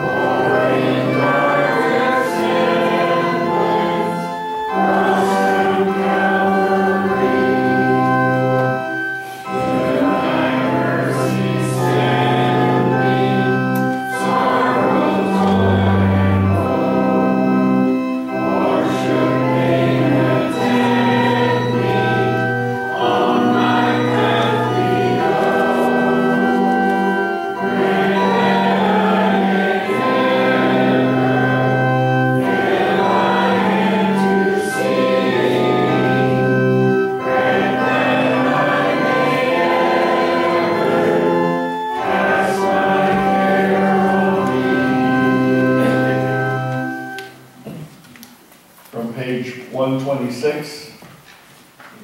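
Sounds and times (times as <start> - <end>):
congregation singing a hymn: 0.0 - 48.0
organ: 0.0 - 51.0.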